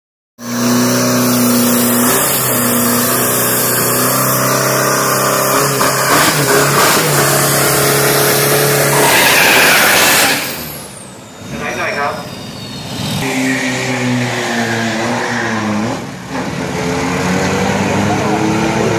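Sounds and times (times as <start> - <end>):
diesel engine revving high: 0.4 - 18.9.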